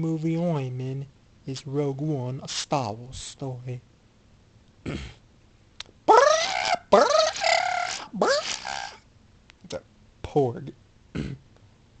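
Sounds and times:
man imitating creature call: 6.1s - 9.0s.

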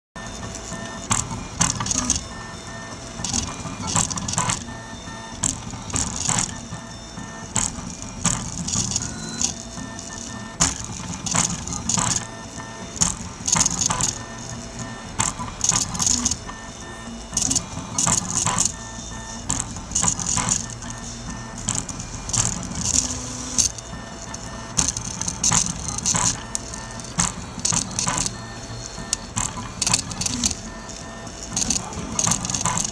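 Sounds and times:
printer rasp: 0.2s - 32.9s
stepper motors whining: 0.2s - 32.9s.

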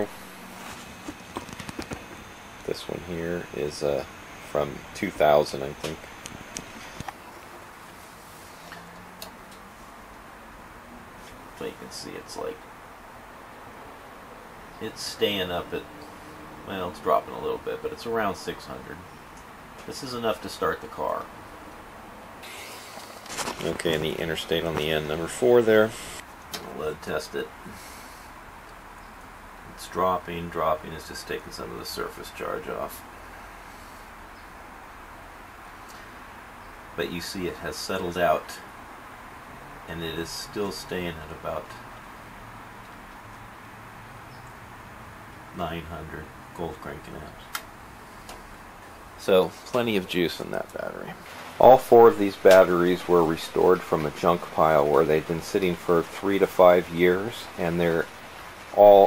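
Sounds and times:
low background hiss: 0.0s - 59.0s.

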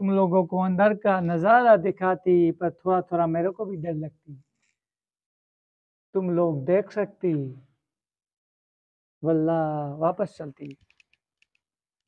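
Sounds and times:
man speaking: 0.0s - 4.4s, 6.2s - 7.6s, 9.2s - 10.8s.

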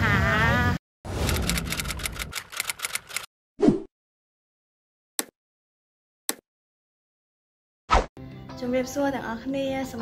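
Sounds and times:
rapid clicks: 1.2s - 3.3s
woman's voice: 8.6s - 10.0s.

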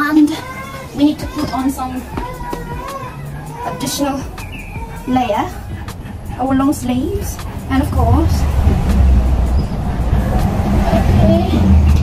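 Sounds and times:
steady low rumble: 1.9s - 12.0s.

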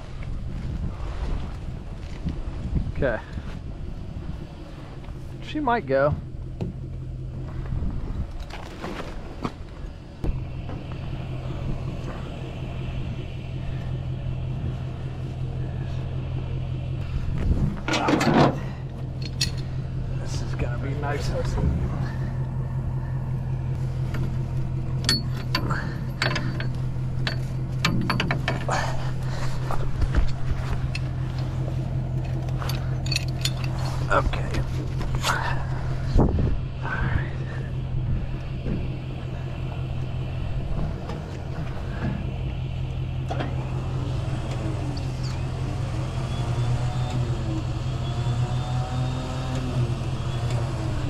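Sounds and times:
steady low hum: 0.0s - 51.0s
hand tools clicking and scraping: 19.2s - 19.7s, 25.0s - 34.4s.

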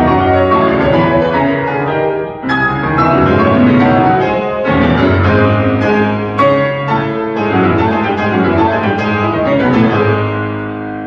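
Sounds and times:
grand piano played loudly: 0.0s - 11.0s.

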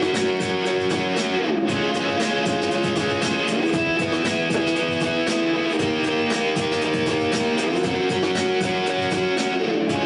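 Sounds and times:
electric guitar strummed chords: 0.0s - 10.0s
live band music: 0.0s - 10.0s.

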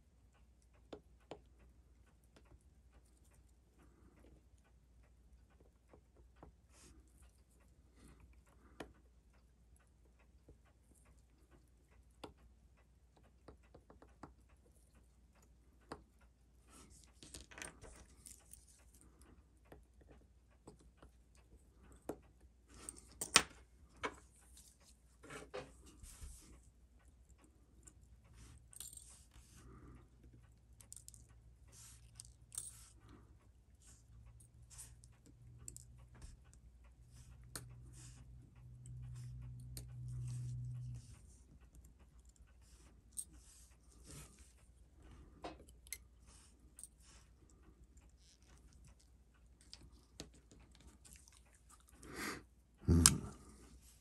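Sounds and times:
low steady hum: 0.0s - 54.0s
small metal tools clicking and scraping: 30.8s - 33.0s.

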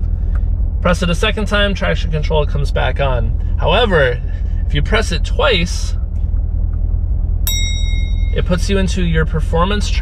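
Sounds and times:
car engine idling: 0.0s - 10.0s
electronic chime: 7.5s - 8.6s.

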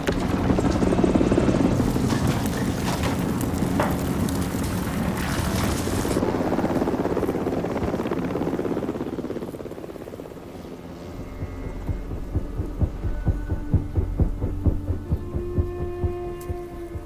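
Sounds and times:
helicopter rotor beating: 0.0s - 17.0s
low engine hum: 10.1s - 17.0s.

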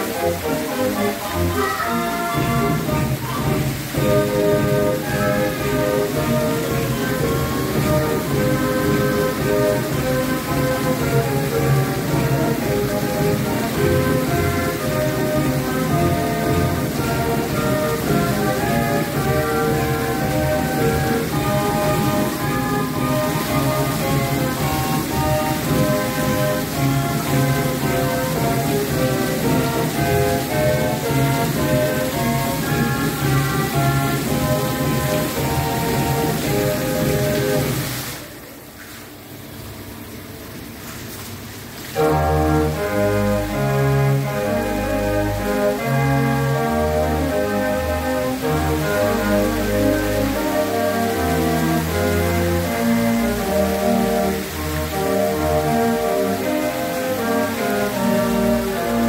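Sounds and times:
music playing: 0.0s - 38.2s, 41.9s - 59.0s
fountain jets splashing onto water: 0.0s - 59.0s.

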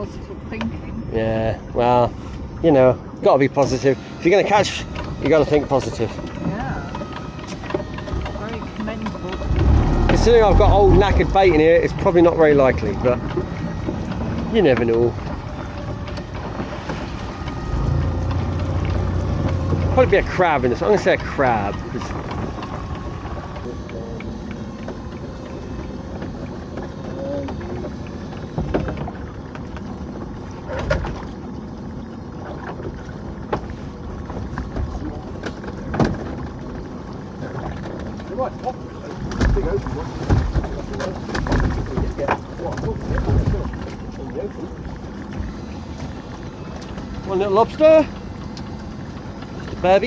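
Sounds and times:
boat motor running: 0.0s - 50.0s
knocks and clunks against boat: 0.0s - 50.0s.

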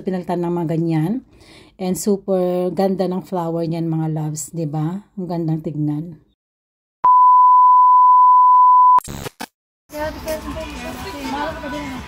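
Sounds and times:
steady high test-tone beep: 7.0s - 9.0s.

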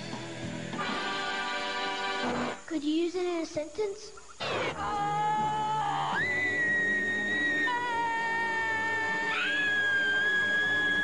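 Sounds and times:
people screaming high-pitched: 4.6s - 11.0s.

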